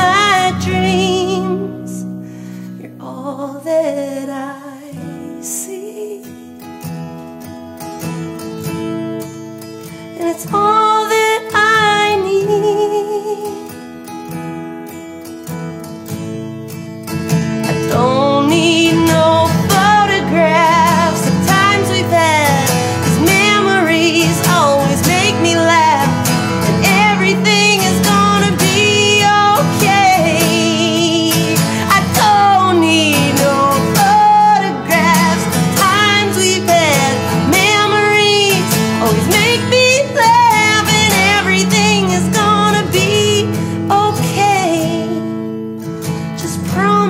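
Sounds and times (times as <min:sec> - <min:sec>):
woman singing blues: 0:00.0 - 0:06.8, 0:09.2 - 0:13.9, 0:17.2 - 0:47.0
acoustic guitar: 0:00.0 - 0:47.0.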